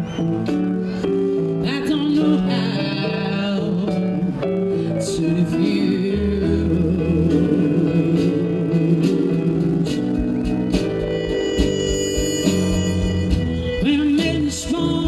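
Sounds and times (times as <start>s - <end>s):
keyboard bass line and chords: 0.0s - 15.0s
wavering lead melody: 0.0s - 15.0s.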